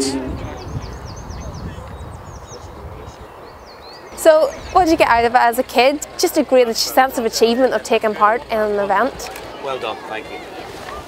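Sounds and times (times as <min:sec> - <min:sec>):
songbird chirping: 0:00.0 - 0:07.8.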